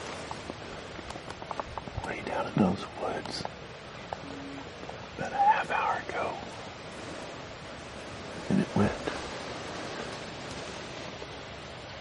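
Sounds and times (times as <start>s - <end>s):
steady outdoor background hiss: 0.0s - 12.0s.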